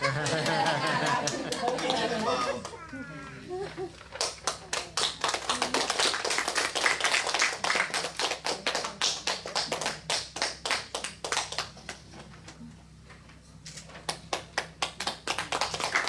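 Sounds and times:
audience applauding: 0:00.0 - 0:02.8, 0:04.2 - 0:12.0, 0:14.1 - 0:16.0.

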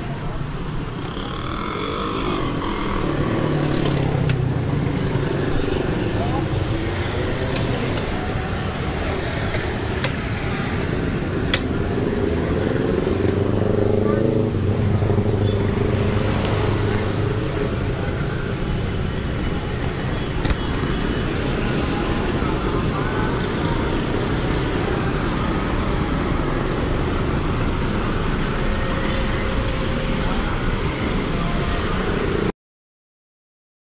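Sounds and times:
scooters and cars passing: 0:00.0 - 0:32.5.

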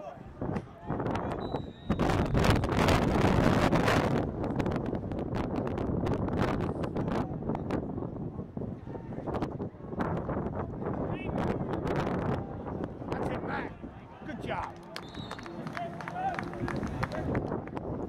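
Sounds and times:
wind buffeting microphone: 0:00.2 - 0:14.7, 0:15.5 - 0:18.0
indistinct crowd voices: 0:07.2 - 0:17.6.

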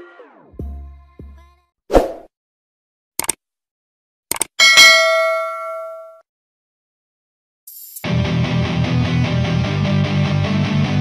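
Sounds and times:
bell ding ringing: 0:04.6 - 0:06.2.

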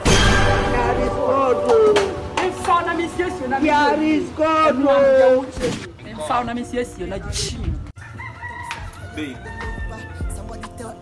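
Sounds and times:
rooster crowing: 0:08.0 - 0:10.4.

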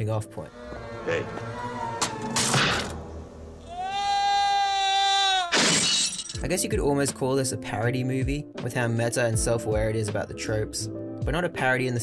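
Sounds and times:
man screaming: 0:03.6 - 0:05.8.

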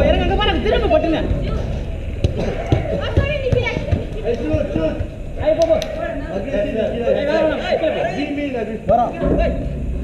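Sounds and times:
steady background hum: 0:00.0 - 0:10.0
running footsteps: 0:01.3 - 0:06.2.

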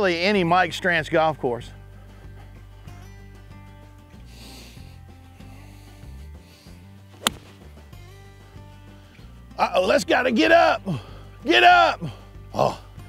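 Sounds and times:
soft background music: 0:00.0 - 0:13.0
golf club striking ball: 0:07.2 - 0:07.7.

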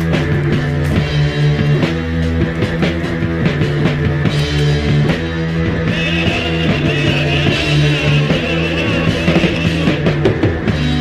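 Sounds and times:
heavy psychedelic rock band: 0:00.0 - 0:11.0.

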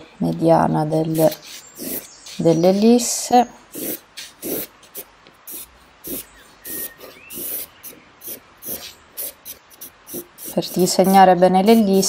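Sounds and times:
charcoal pencil scratching on board: 0:01.1 - 0:03.0, 0:03.7 - 0:12.0.

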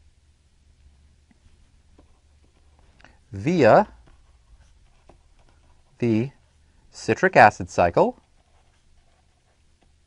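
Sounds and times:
person speaking: 0:02.0 - 0:09.6
stylus scratching on pen tablet: 0:03.7 - 0:06.5, 0:08.2 - 0:09.9.

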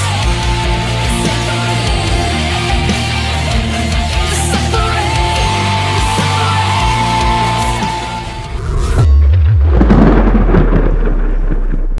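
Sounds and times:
heavy thunder boom: 0:08.4 - 0:12.0
rolling thunder rumble: 0:08.4 - 0:12.0.

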